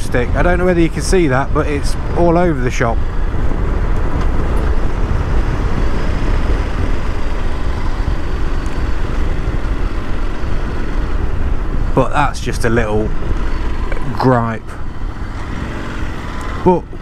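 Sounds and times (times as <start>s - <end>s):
motorcycle engine: 0.0s - 17.0s
road noise: 0.0s - 17.0s
wind rumble on microphone: 0.0s - 17.0s.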